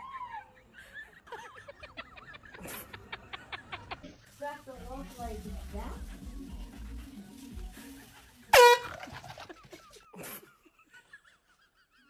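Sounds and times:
air horn blast: 8.5s - 9.1s.

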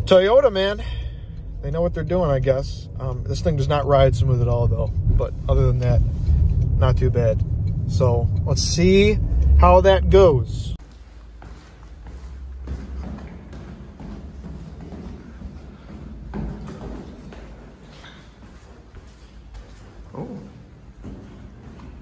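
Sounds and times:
low steady hum: 0.0s - 13.6s
footsteps echoing in stairwell: 10.8s - 22.0s.

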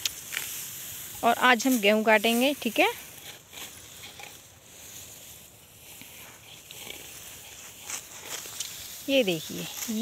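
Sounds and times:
soft crunches: 0.0s - 10.0s
steady high hiss: 0.0s - 10.0s
wheat stalks rustling: 0.0s - 10.0s.

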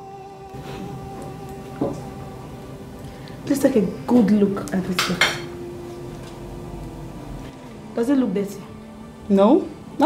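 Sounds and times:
glass tableware clinking: 5.0s - 5.5s.

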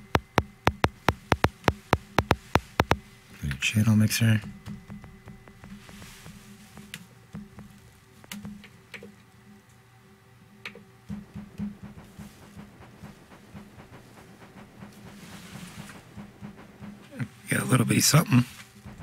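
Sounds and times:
faint sampled music loop: 0.0s - 3.0s.

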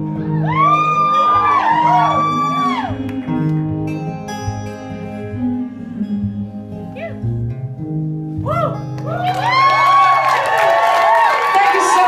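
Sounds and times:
person singing: 0.0s - 7.3s
acoustic guitar and keyboard chords: 0.0s - 9.1s
person whooping: 0.2s - 3.3s, 8.4s - 12.0s.

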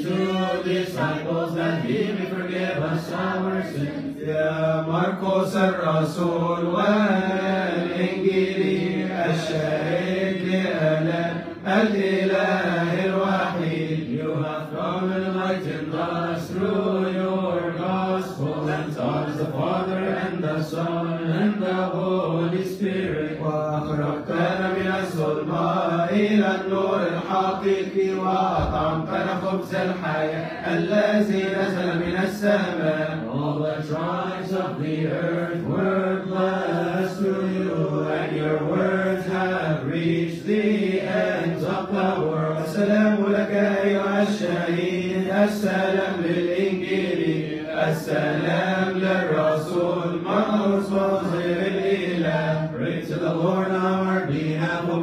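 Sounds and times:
men chanting a hymn: 0.0s - 55.0s.

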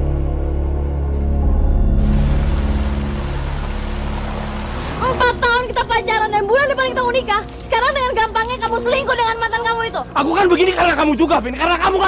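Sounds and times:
low sustained music notes: 0.0s - 12.0s
heavy rain falling: 1.9s - 12.0s.

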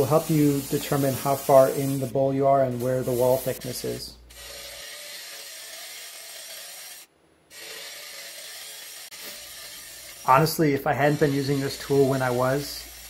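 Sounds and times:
lathe cutter scraping wood: 4.3s - 13.0s.

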